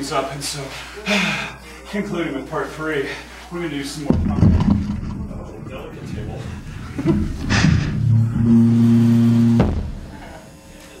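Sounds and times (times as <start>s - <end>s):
low electronic drone: 4.1s - 10.3s.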